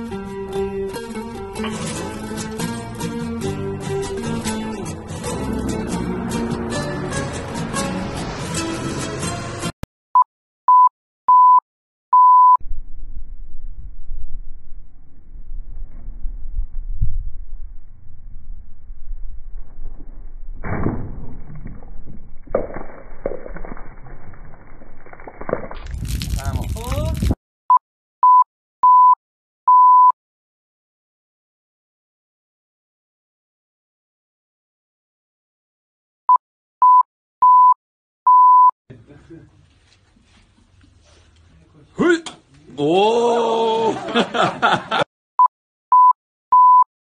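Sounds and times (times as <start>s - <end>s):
high-pitched beep: 45.9s - 46.9s.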